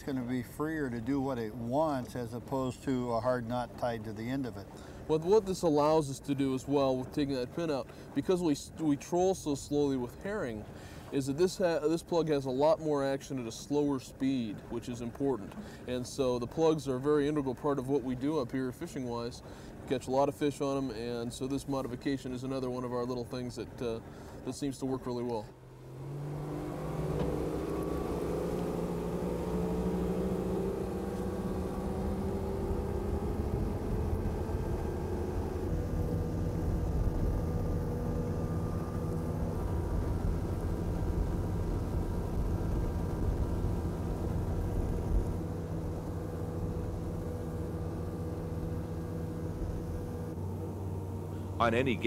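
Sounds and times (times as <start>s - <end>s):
outboard motors droning: 0.0s - 52.0s.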